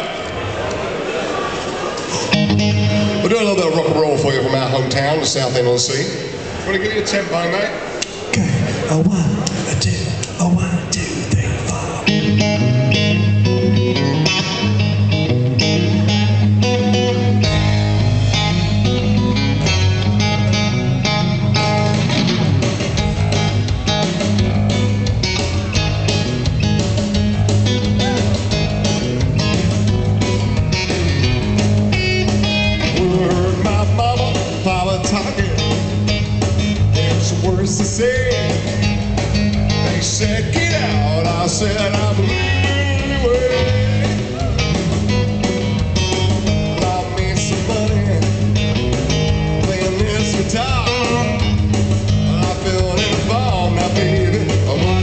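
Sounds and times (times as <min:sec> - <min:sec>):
drums: 0:00.0 - 0:06.5, 0:08.0 - 0:55.0
amplified electric guitar: 0:02.0 - 0:06.6, 0:07.8 - 0:55.0
bass guitar: 0:02.1 - 0:06.0, 0:08.3 - 0:55.0.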